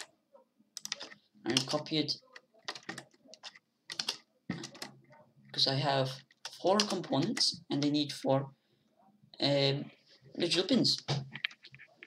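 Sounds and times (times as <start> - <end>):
computer keyboard keys clicking: 0.8 - 1.8, 2.6 - 4.9.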